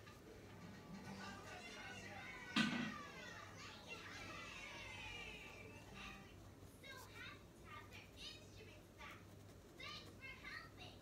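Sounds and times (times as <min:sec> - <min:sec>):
children playing and calling out: 0:01.5 - 0:06.2.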